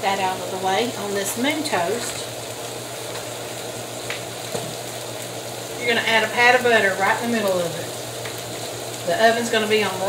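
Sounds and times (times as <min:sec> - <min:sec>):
ham and eggs sizzling: 0:00.0 - 0:10.0.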